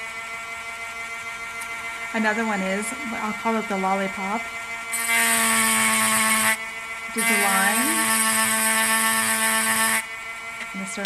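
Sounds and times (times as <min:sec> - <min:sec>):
rotary tool motor whine: 0:00.0 - 0:11.0.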